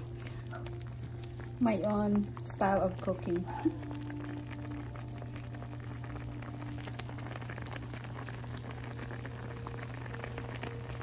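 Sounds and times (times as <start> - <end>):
liquid bubbling in a pan: 0.0 - 11.0
steady low hum: 0.0 - 11.0.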